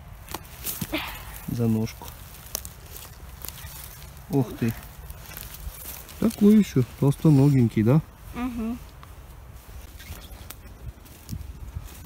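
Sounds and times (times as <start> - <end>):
footsteps on needles and twigs: 0.0 - 12.0
twigs crackling: 0.0 - 12.0.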